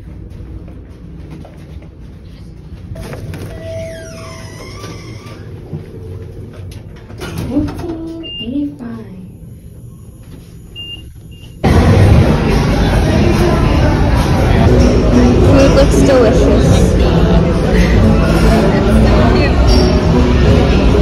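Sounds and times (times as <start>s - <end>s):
elevator hum: 0.0s - 21.0s
low voices: 11.7s - 21.0s.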